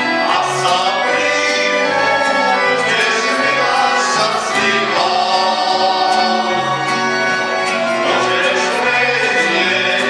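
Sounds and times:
men singing together: 0.0s - 6.9s, 7.7s - 10.0s
folk band playing: 0.0s - 10.0s.

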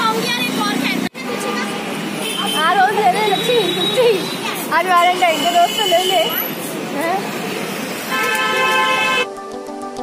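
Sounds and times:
voices: 0.0s - 7.4s
street noise: 0.0s - 10.0s
vehicle horn honking: 1.3s - 4.4s, 5.0s - 6.6s, 8.1s - 9.3s.

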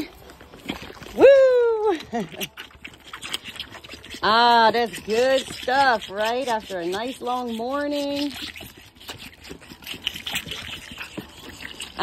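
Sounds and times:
lambs sucking milk from bottles: 0.0s - 12.0s.

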